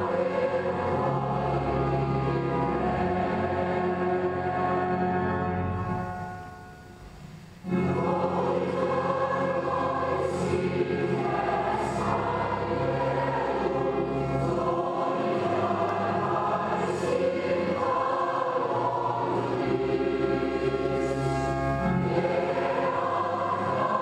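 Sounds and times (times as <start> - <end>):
choir singing sustained chords: 0.0 - 24.0.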